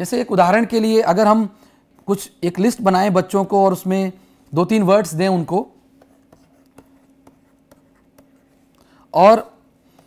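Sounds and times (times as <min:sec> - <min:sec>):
faint steady hum: 0:00.0 - 0:10.0
stylus tapping on pen tablet: 0:06.0 - 0:08.5.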